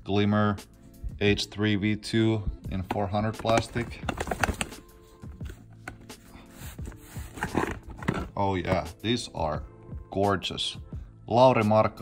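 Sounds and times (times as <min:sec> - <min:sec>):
quiet background music: 0:00.0 - 0:12.0
plastic discs clicking together: 0:02.8 - 0:04.8.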